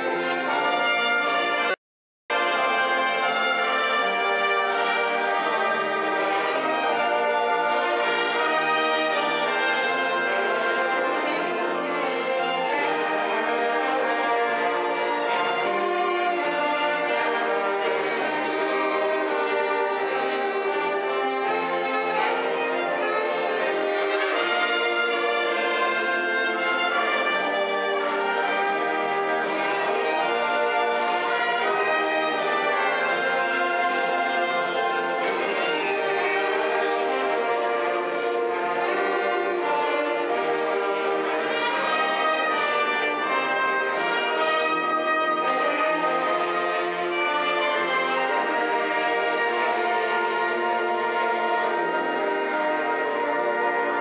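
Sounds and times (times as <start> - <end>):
brass band playing: 0.0 - 54.0.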